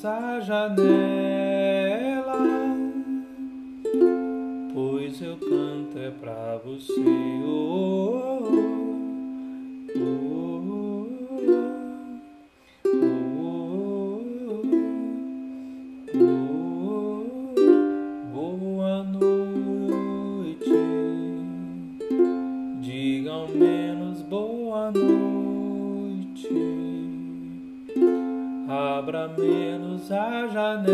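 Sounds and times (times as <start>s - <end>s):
wordless singing: 0.0s - 15.6s, 16.2s - 22.1s, 22.7s - 27.9s, 28.6s - 30.9s
ukulele strummed slowly: 0.0s - 30.9s.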